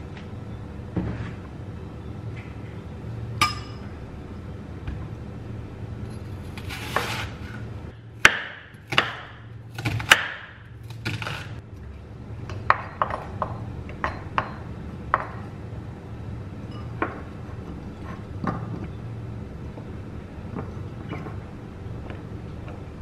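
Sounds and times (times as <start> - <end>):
low steady hum: 0.0 - 23.0
knife chopping on wooden board: 8.2 - 11.4.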